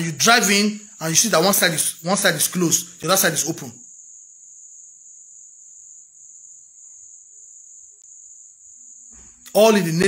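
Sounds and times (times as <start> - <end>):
high-pitched insect trill: 0.0 - 10.0.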